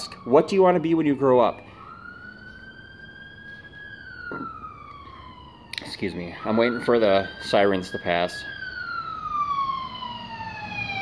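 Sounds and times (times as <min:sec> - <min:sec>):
ambulance siren wailing: 0:00.0 - 0:11.0.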